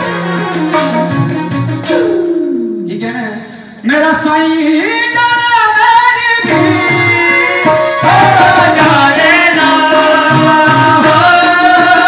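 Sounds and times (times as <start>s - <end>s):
man singing through loudspeakers: 2.9s - 12.0s.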